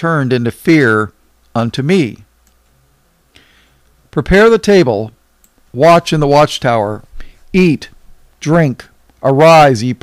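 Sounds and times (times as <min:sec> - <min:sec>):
man speaking: 0:00.0 - 0:02.3, 0:04.1 - 0:10.0
soft in-breath: 0:03.3 - 0:04.0, 0:07.1 - 0:07.5.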